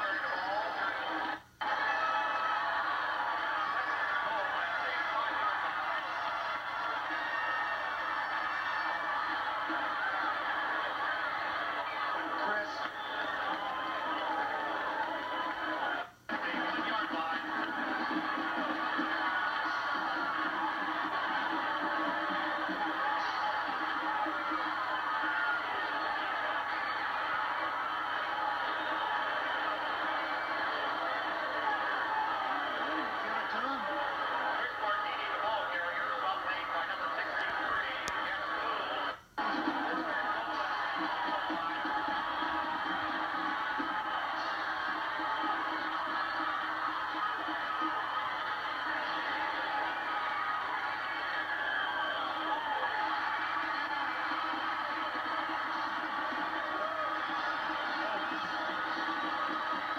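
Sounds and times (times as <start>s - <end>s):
crowd noise: 0.0s - 59.9s
music through television speaker: 0.0s - 59.9s.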